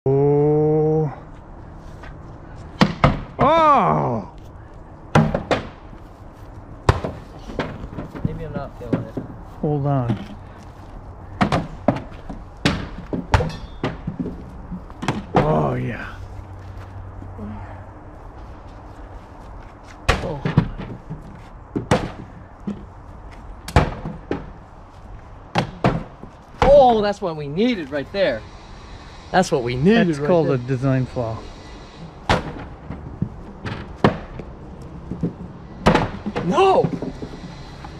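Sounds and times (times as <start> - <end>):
balls knocking wooden targets: 32.3 - 37.4.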